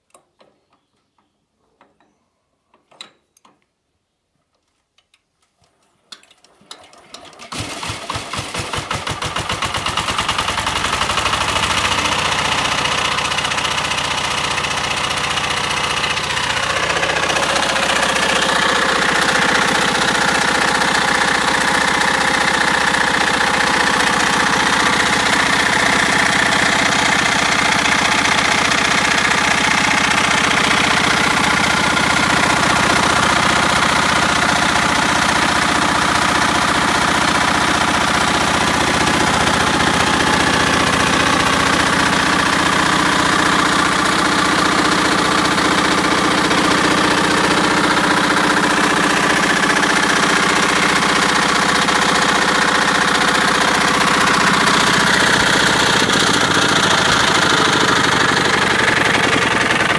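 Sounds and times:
diesel engine knocking: 7.7s - 59.9s.

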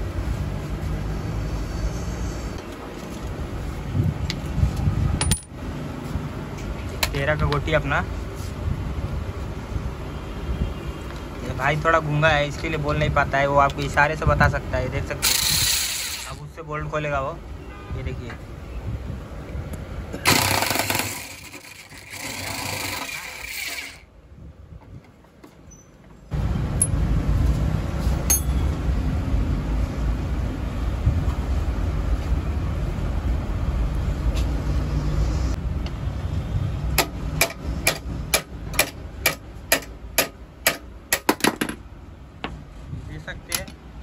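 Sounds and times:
metal tools clinking: 5.2s - 5.5s, 28.2s - 28.7s
electric impact wrench: 15.2s - 16.4s, 20.2s - 24.0s.

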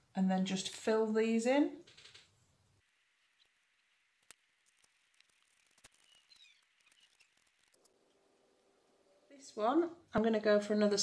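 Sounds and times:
small clicks: 4.2s - 8.0s
faint high chirps: 5.8s - 7.9s.

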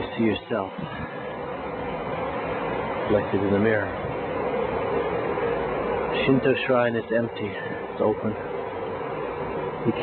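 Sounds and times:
faint constant hum: 0.0s - 10.0s.

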